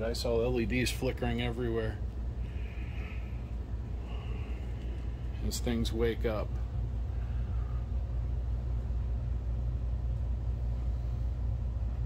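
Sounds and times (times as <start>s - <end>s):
faint high whine: 0.0s - 12.0s
projector electronics humming: 0.0s - 12.0s.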